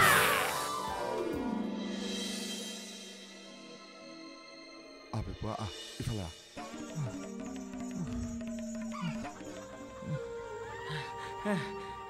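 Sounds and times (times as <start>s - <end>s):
background music with pitch slides: 0.0s - 12.0s.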